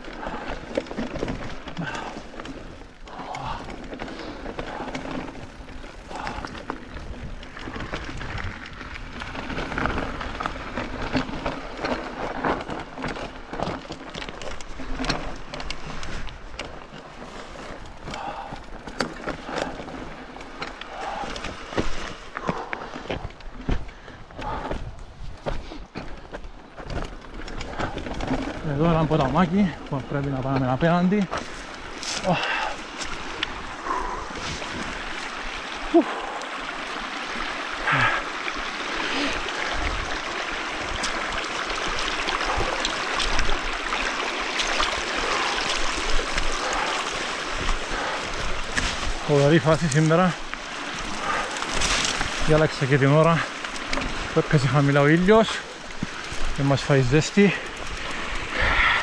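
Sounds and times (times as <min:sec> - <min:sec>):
bike rattling and knocking: 0:00.0 - 0:59.0
bike tyres rolling on stones: 0:00.0 - 0:59.0.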